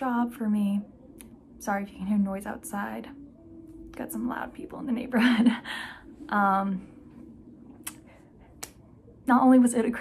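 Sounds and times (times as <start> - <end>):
faint low background noise: 0.0 - 10.0.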